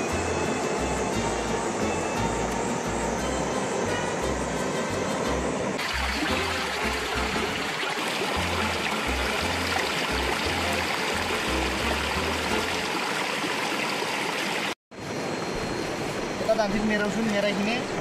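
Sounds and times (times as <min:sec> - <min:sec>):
background music: 0:00.0 - 0:12.9
stream rushing over rocks: 0:05.8 - 0:14.8.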